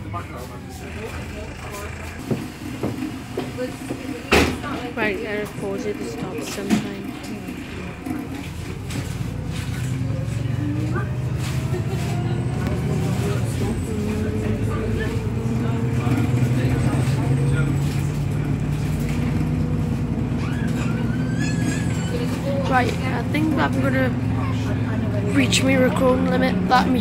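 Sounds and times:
bus engine accelerating: 0.0 - 27.0.

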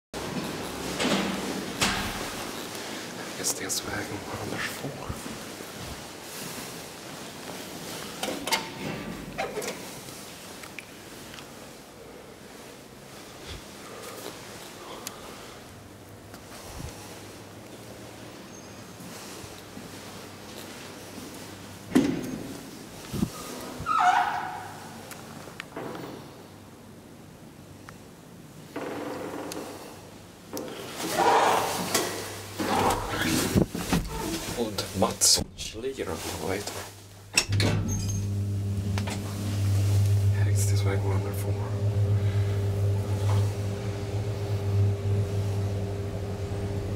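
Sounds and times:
low steady hum: 32.2 - 46.9.

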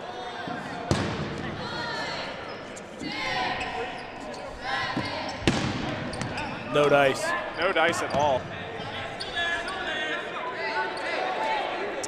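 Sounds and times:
court background noise: 0.0 - 12.0.

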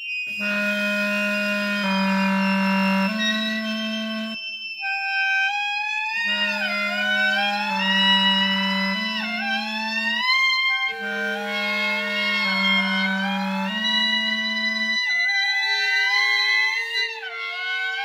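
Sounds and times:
clarinets playing: 0.0 - 18.0.

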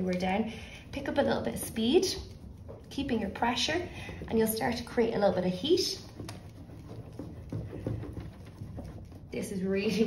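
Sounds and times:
spoon rubbing over paper: 0.0 - 10.0.

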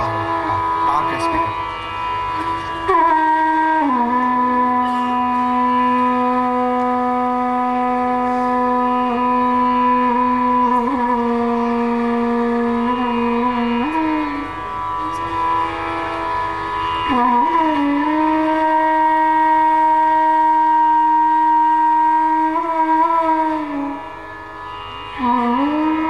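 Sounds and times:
bamboo flute playing slow phrases: 0.0 - 26.0.

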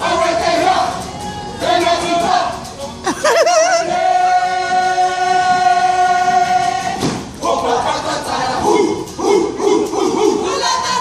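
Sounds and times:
group chanting in unison: 0.0 - 1.0, 3.8 - 11.0.

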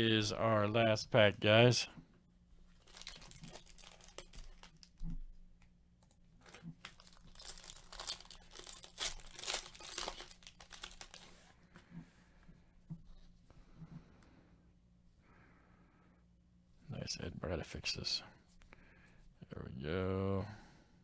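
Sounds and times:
foil wrapper crinkling and tearing: 2.7 - 5.0, 6.4 - 11.5.

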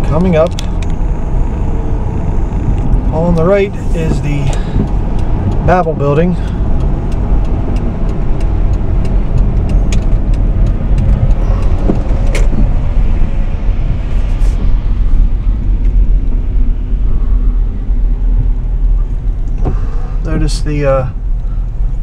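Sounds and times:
car tyres and engine rumble: 0.0 - 22.0.

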